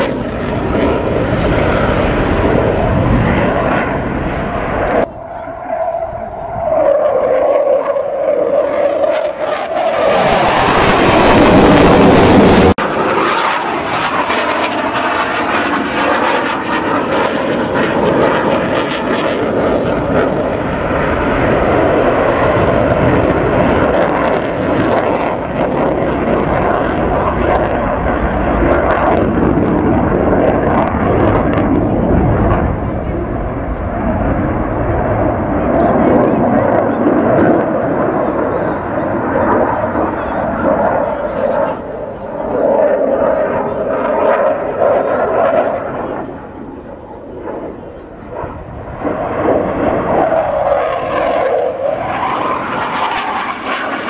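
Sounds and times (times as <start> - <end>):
jet engine roar: 0.0 - 54.0
loud jet burst: 0.0 - 54.0.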